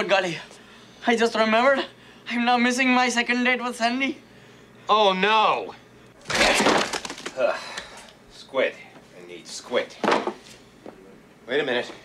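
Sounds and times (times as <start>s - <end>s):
box cracking and breaking: 6.2s - 7.4s.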